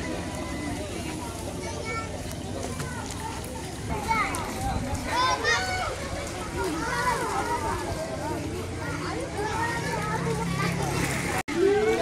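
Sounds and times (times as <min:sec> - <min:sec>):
children playing and talking: 0:00.0 - 0:12.0.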